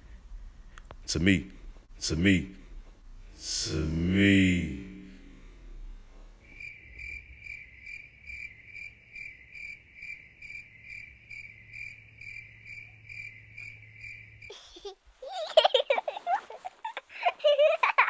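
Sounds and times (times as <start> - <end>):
crickets chirping: 4.4 - 14.5.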